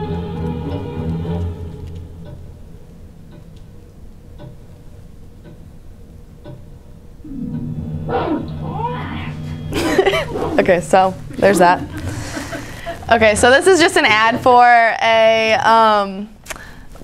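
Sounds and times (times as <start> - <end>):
low sustained music: 0.0 - 3.4, 7.2 - 14.9
sudden loud sound: 7.2 - 10.8
cat meowing: 8.1 - 9.4.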